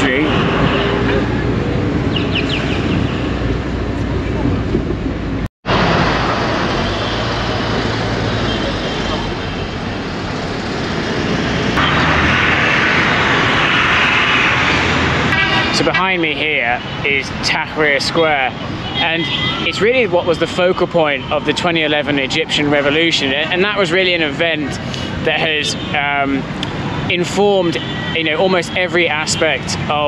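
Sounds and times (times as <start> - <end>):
car engine and road noise: 0.0 - 30.0
car horns tooting: 11.8 - 17.2, 18.2 - 23.0, 27.2 - 30.0.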